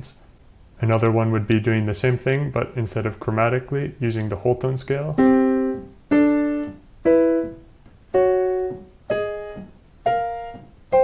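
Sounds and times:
piano playing fifths: 5.1s - 11.0s.

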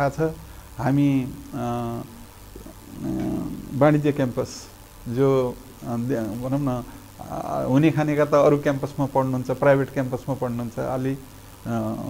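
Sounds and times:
man speaking: 0.0s - 12.0s
man hesitating: 2.6s - 3.9s.

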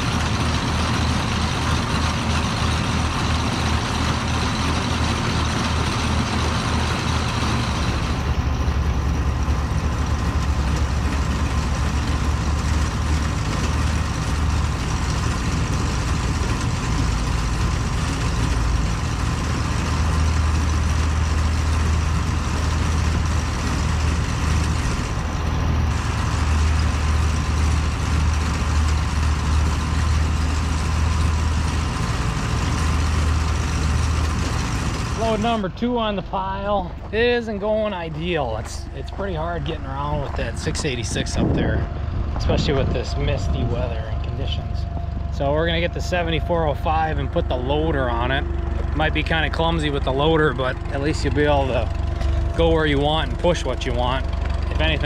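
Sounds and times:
tractor engines running: 0.0s - 55.0s.

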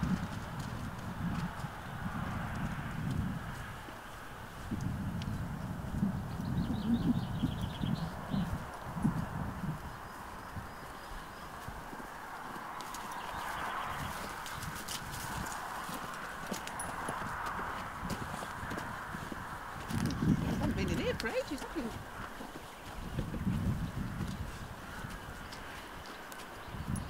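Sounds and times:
hoof thuds on grass: 11.4s - 27.0s.

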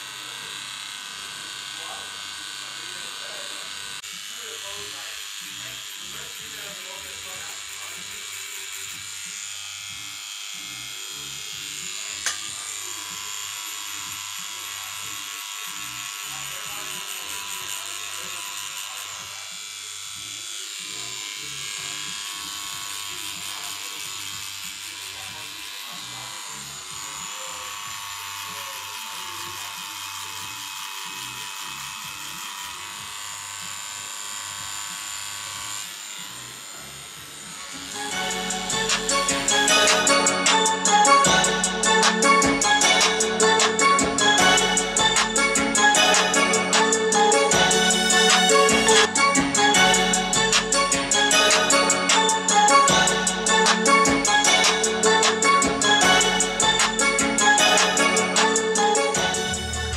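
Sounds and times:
tattoo machine buzzing: 0.0s - 59.9s.

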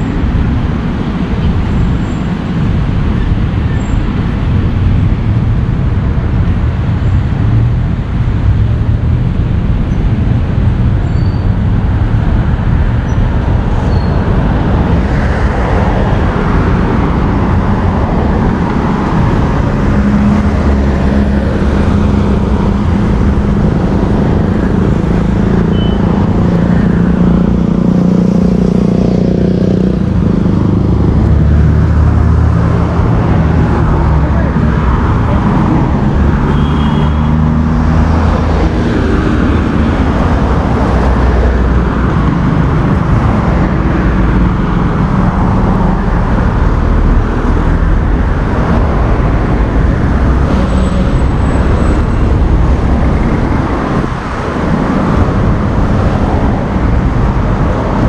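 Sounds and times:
road traffic passing: 0.0s - 58.0s.

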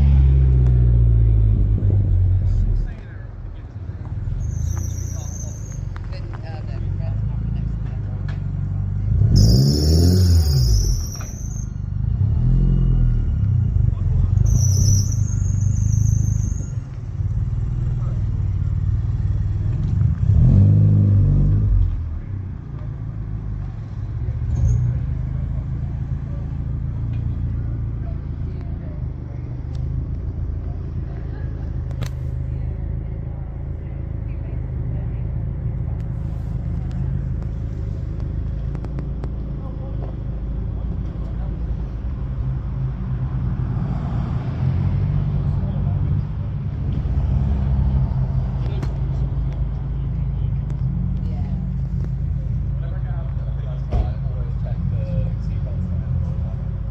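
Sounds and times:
low rumble of engines: 0.0s - 56.9s
car engine revving: 8.4s - 11.1s, 17.2s - 22.3s
faint voices: 22.1s - 43.4s.

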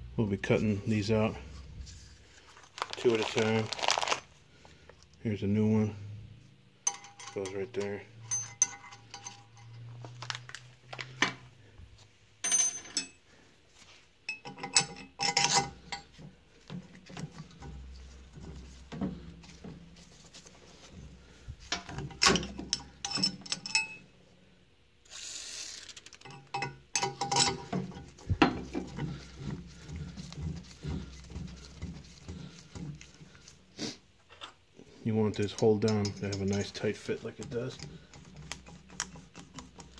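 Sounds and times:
steel parts clinking on metal: 6.8s - 9.9s, 12.4s - 13.2s, 14.3s - 16.2s, 21.7s - 24.1s, 26.2s - 29.0s, 35.3s - 37.9s.

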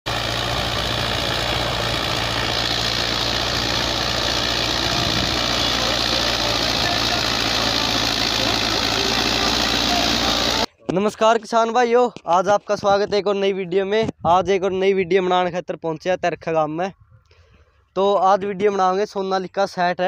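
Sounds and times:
tractor diesel engine running: 0.0s - 10.7s.

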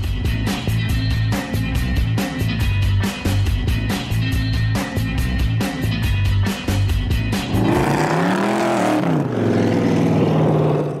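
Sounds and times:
rock music: 0.0s - 10.7s
car engine revving: 7.3s - 11.0s.

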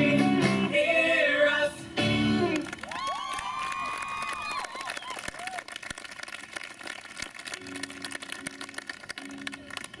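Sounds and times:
scattered audience applause: 2.6s - 10.0s.

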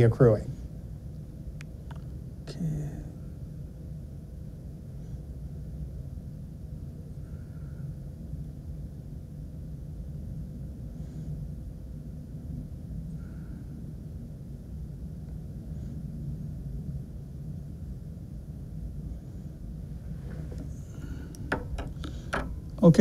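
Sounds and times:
low rumble: 0.0s - 23.0s.

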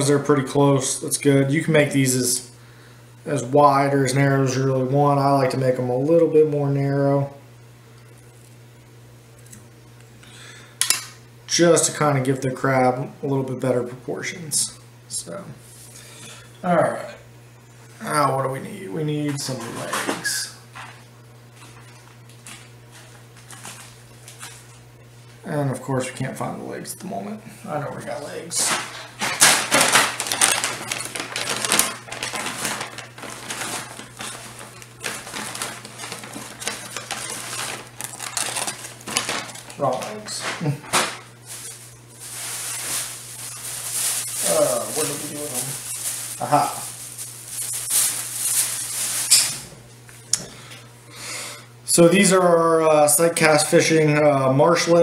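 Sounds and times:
small items clattering and rustling: 28.5s - 49.6s.

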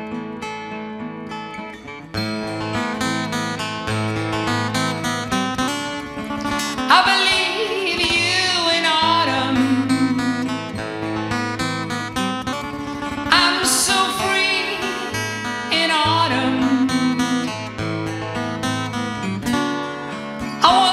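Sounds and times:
acoustic guitars playing: 0.0s - 20.9s
wordless singing with vibrato: 6.8s - 11.4s, 13.2s - 18.0s, 20.6s - 20.9s.

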